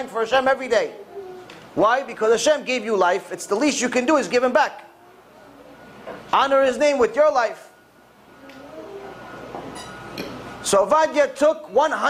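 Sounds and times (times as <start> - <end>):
room hum: 0.0 - 12.0.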